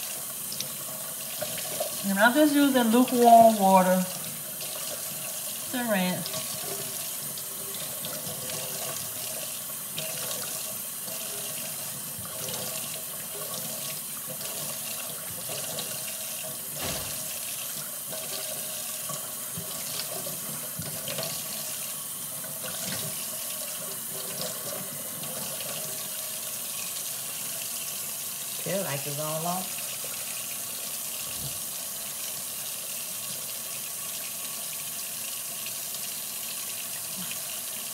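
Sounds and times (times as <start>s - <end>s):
tap running into metal sink: 16.7s - 17.5s.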